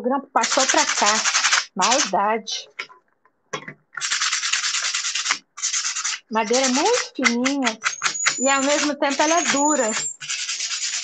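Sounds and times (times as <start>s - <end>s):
sandpaper rasping on wood: 4.0s - 11.0s.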